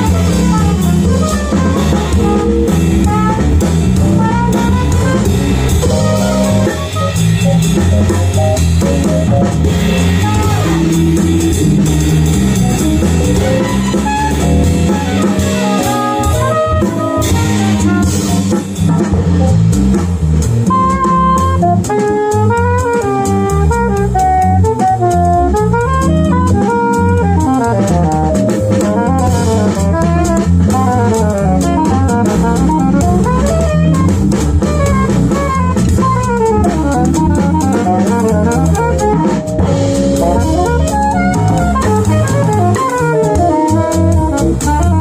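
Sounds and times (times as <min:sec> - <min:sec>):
alto saxophone solo: 0:00.0 - 0:08.6, 0:09.6 - 0:18.6, 0:20.6 - 0:45.0
drum kit with cymbal strokes: 0:00.0 - 0:45.0
electric bass guitar: 0:00.0 - 0:45.0.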